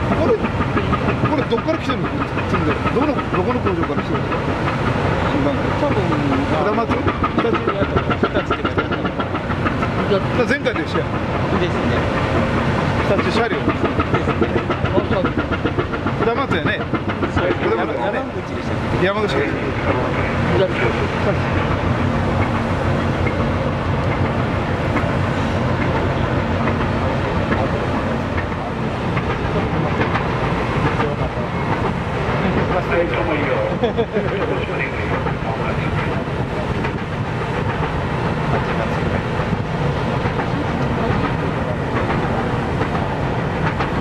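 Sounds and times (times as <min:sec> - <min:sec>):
diesel engine humming and rattling: 0:00.0 - 0:44.0.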